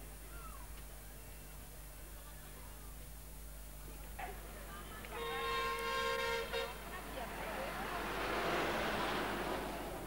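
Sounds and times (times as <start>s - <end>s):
vehicle horn blast: 5.2s - 6.8s
bus passing: 6.3s - 10.0s.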